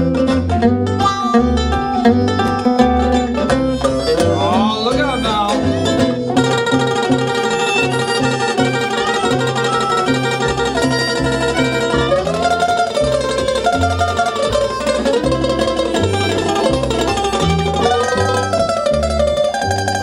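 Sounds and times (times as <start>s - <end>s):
harmonica melody: 0.0s - 19.8s
plucked upright bass: 0.0s - 20.0s
strummed ukulele: 0.0s - 20.0s.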